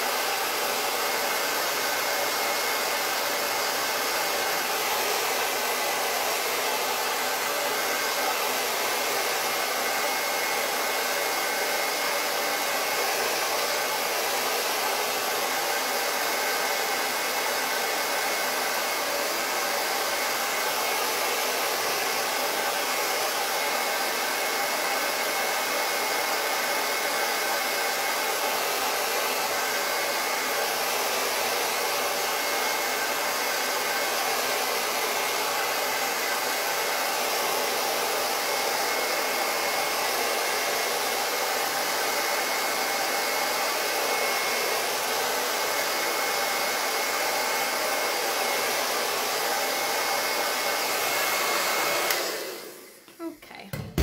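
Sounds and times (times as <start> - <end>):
hair dryer blowing: 0.0 - 54.0.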